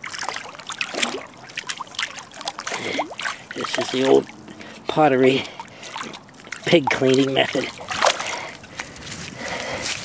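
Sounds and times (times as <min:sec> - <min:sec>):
sharp water splash: 0:00.0 - 0:08.6
stream water splashing and trickling: 0:00.0 - 0:10.0.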